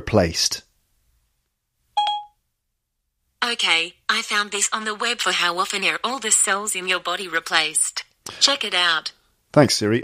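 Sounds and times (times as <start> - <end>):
short electronic phone chime: 2.0 - 2.4.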